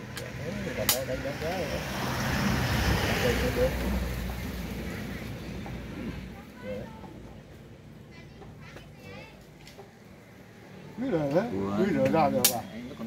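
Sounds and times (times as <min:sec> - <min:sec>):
motor vehicle passing: 0:00.0 - 0:13.0
voices talking: 0:00.0 - 0:13.0
sharp click: 0:12.4 - 0:12.6.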